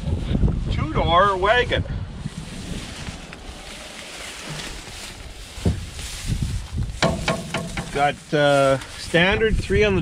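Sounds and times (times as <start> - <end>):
wind buffeting microphone: 0.0 - 10.0
car door knocks: 7.0 - 8.0.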